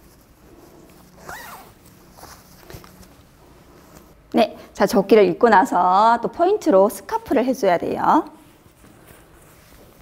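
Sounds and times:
zipper being pulled up: 0.8 - 3.0.

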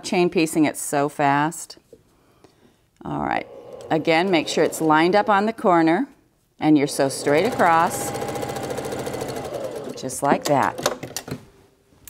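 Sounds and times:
sewing machine stitching: 3.4 - 5.6, 6.8 - 11.0.

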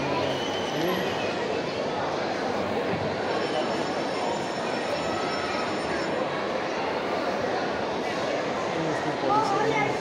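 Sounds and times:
indoor crowd din: 0.0 - 10.0.

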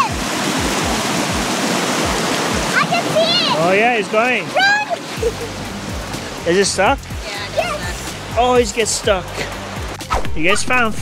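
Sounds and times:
river rushing over rocks: 0.0 - 10.0.

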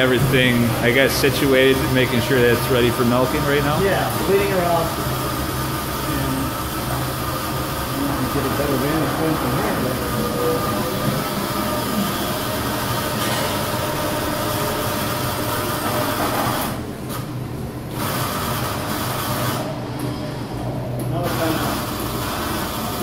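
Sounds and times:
milking robot hum: 0.0 - 16.9.

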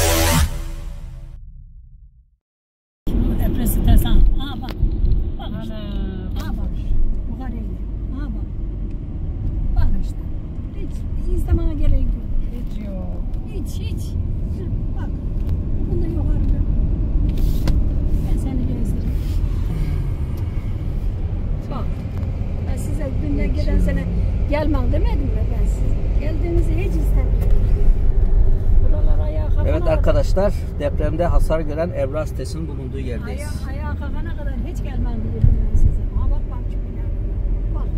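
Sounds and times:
car engine and tyre noise: 0.0 - 1.4, 3.1 - 37.9.

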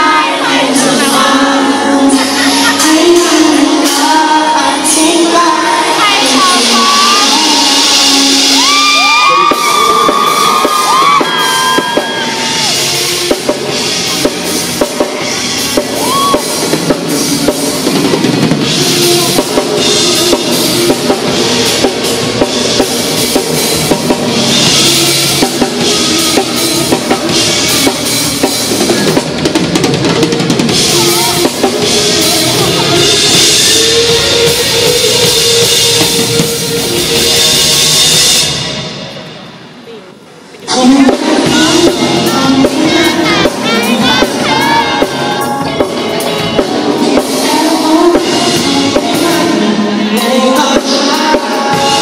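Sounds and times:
drum kit beat: 0.0 - 39.6, 40.7 - 52.0
live rock band: 0.0 - 52.0.

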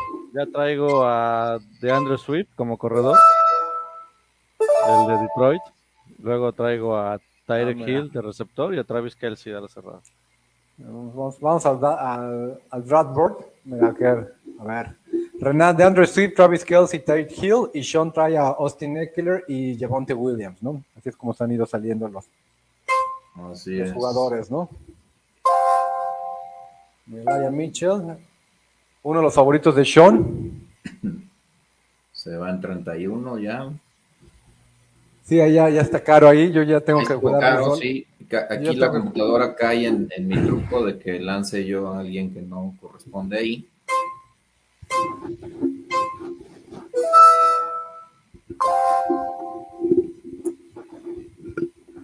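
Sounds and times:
electronic notification chime: 3.1 - 5.7.

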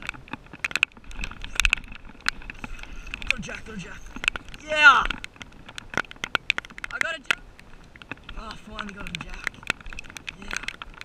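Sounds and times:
low rumble of wind: 0.0 - 11.0.

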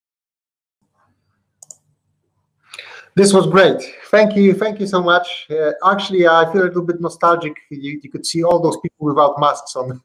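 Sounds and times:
open microphone room noise: 0.8 - 10.0
person speaking: 2.8 - 10.0.

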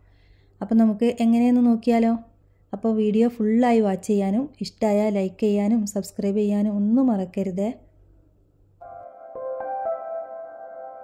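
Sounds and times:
woman speaking: 0.6 - 7.9.

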